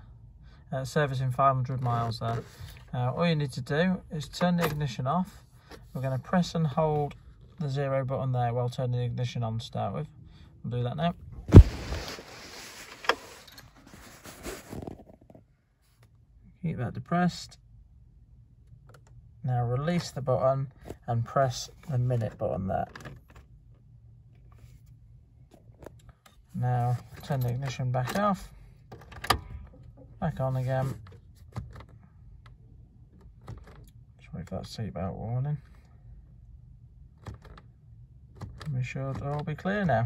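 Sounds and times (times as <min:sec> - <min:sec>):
low hum in car cabin: 0:00.0 - 0:40.0
phone handling rustling: 0:11.4 - 0:15.4.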